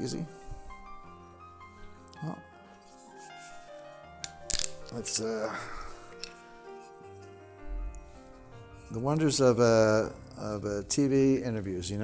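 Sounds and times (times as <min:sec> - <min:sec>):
background music: 0:00.0 - 0:12.0
bottle cap clicking open: 0:04.2 - 0:05.0.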